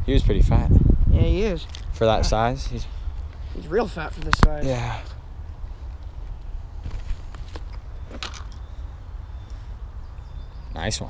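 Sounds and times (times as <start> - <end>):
wind buffeting microphone: 0.0 - 10.7.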